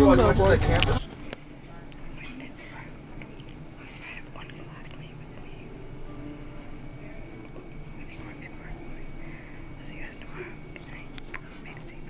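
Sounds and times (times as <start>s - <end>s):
faint steady hum: 0.0s - 12.0s
woman whispering: 1.6s - 5.8s, 6.5s - 12.0s.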